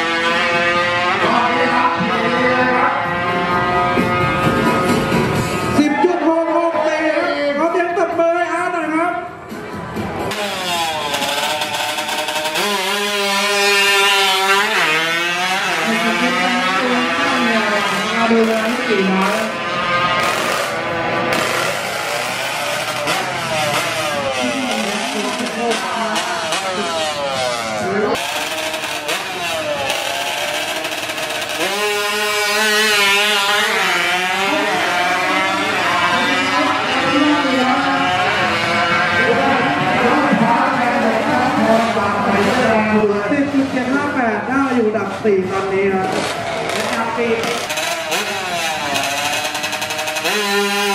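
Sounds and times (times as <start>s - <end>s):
motorcycle engine revving hard: 0.0s - 5.9s, 10.2s - 50.9s.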